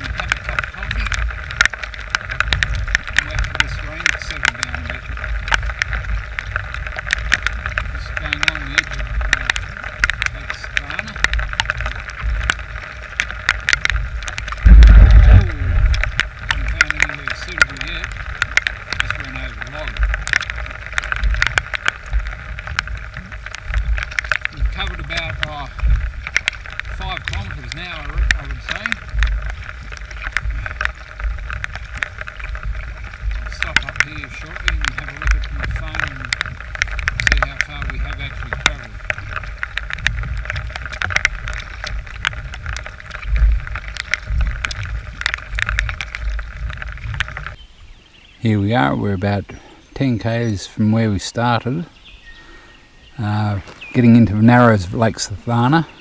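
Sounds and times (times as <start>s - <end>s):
raindrops ticking on camera housing: 0.0s - 56.0s
wind buffeting microphone: 0.0s - 56.0s.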